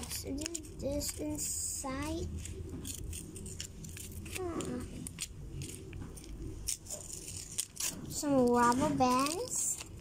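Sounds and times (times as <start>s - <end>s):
paper and plastic wrapping crinkling: 0.0s - 10.0s.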